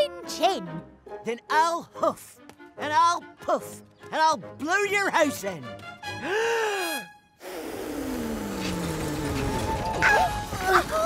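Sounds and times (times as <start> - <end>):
music: 0.0 - 7.4, 8.5 - 11.0.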